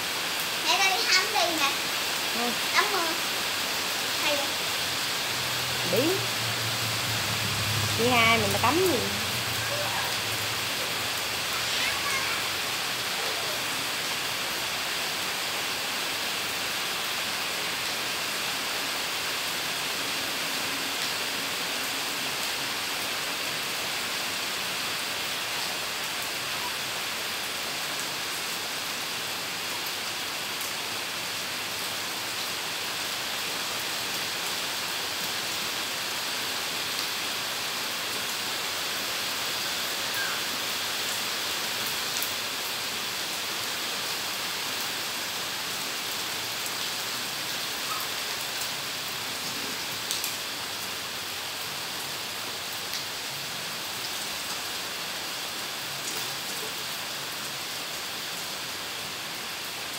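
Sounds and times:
steady rain on tiles: 0.0s - 59.9s.

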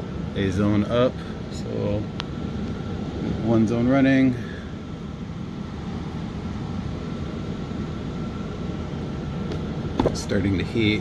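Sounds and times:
faint steady whine: 0.0s - 11.0s
hvac equipment rumbling: 0.0s - 11.0s.

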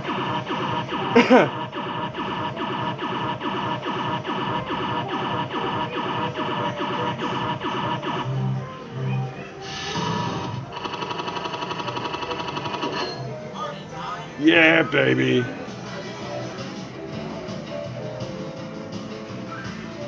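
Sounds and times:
fast electronic beeps: 0.0s - 8.4s, 9.9s - 13.3s
fruit machine win jingle: 14.4s - 15.6s.

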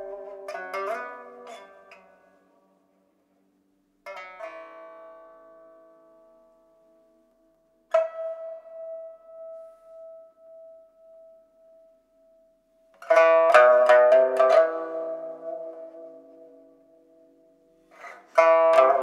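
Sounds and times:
plucked pipa notes: 0.0s - 19.0s.

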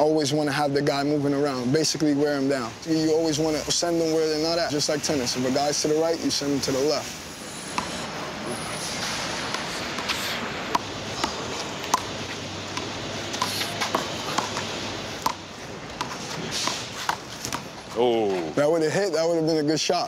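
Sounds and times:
city background noise: 0.0s - 20.0s.

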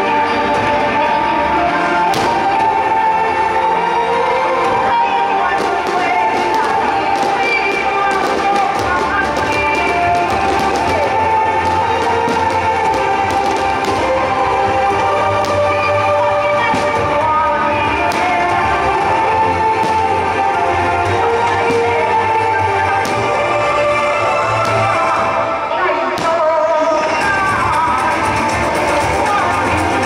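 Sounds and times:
loud music over loudspeakers: 0.0s - 30.0s
fireworks popping and crackling: 2.1s - 2.9s, 5.5s - 23.8s, 24.4s - 25.4s.

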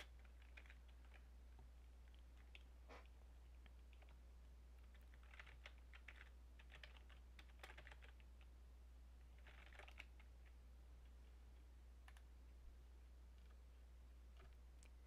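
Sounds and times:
typing on computer keyboard: 0.0s - 1.3s, 4.8s - 8.5s, 9.4s - 10.3s
low steady hum: 0.0s - 15.0s.

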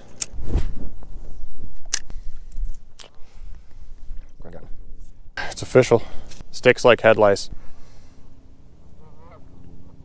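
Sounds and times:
wind rumble on microphone: 0.3s - 2.9s.

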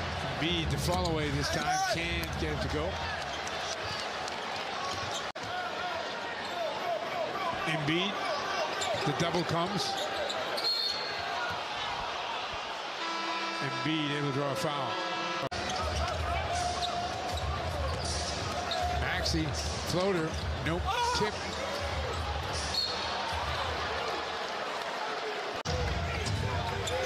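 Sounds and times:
arena crowd noise: 0.0s - 27.0s.

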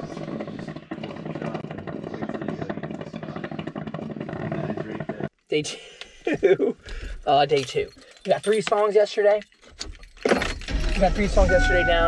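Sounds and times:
coffee maker gurgling and sputtering: 0.0s - 5.4s.

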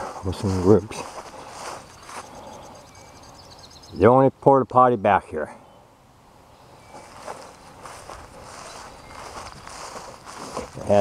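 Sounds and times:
footsteps through grass: 0.0s - 3.2s, 6.8s - 11.0s.

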